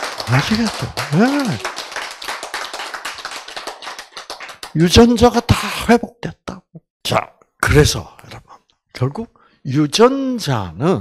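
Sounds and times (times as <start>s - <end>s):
audience clapping: 0.0s - 5.2s.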